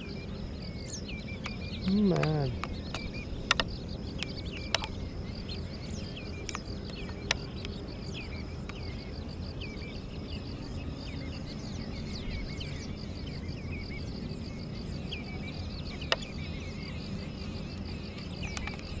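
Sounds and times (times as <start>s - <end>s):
birds chirping: 0.0s - 19.0s
high insect-like trill: 0.0s - 19.0s.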